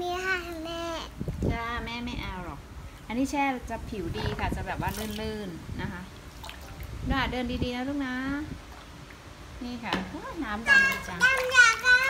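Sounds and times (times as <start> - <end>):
child's high-pitched voice: 0.0 - 1.2, 10.6 - 12.0
woman speaking: 1.5 - 6.1, 9.6 - 11.2.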